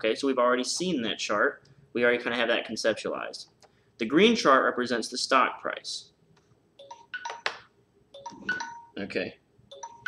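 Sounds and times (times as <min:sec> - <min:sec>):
timer alarm chime ringtone: 0:06.8 - 0:07.5, 0:08.2 - 0:09.0, 0:09.7 - 0:10.0.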